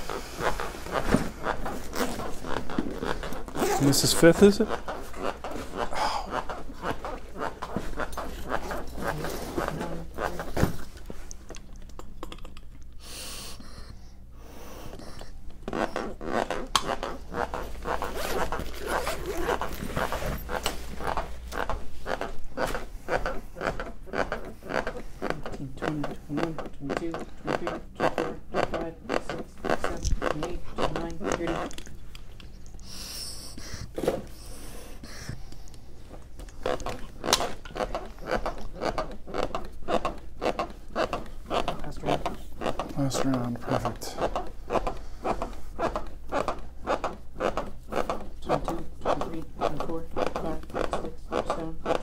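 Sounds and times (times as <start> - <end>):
chest compressions on a manikin: 0.0 - 11.5, 12.9 - 52.0.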